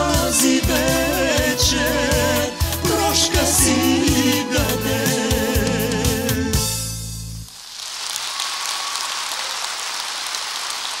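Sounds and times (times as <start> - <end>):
audience applause: 7.6 - 11.0.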